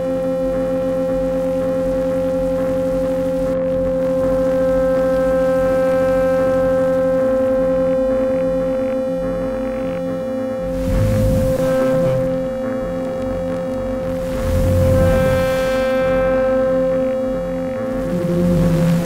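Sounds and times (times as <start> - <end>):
rapidly pulsing low tone: 6.7 - 19.0
steady mid-pitched synth tone: 9.8 - 19.0
low tone switching on and off: 10.7 - 19.0.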